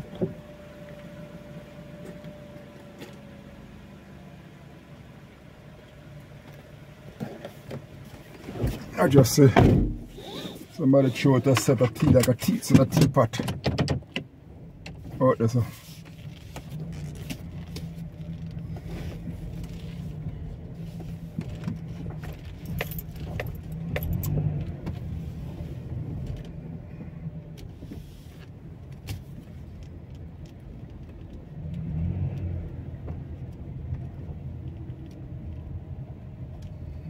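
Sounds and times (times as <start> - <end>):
car engine and road noise: 0.0 - 37.0.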